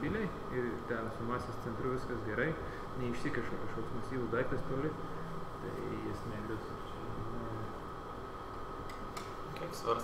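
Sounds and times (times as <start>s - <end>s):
faint high-pitched hum: 0.0s - 10.0s
low even hiss: 0.0s - 10.0s.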